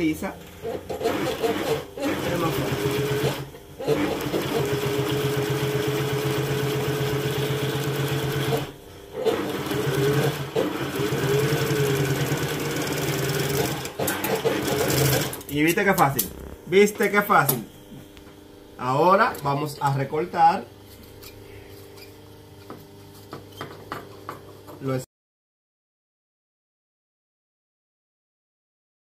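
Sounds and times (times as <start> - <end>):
industrial sewing machine stitching: 0.6 - 16.3.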